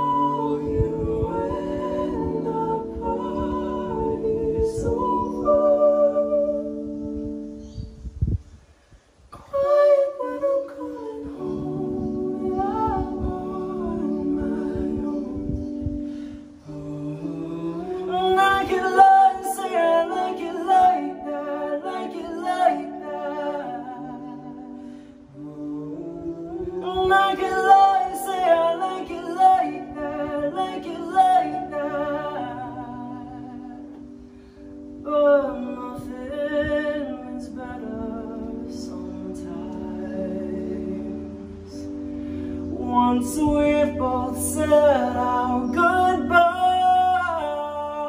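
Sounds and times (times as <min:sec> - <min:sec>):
person singing pop: 0:00.0 - 0:06.9, 0:09.4 - 0:34.1
electric keyboard chords: 0:00.0 - 0:48.0.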